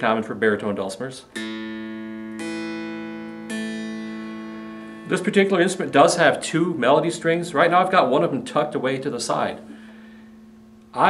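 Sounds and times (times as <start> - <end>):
dulcimer chord strummed: 1.3 - 8.8.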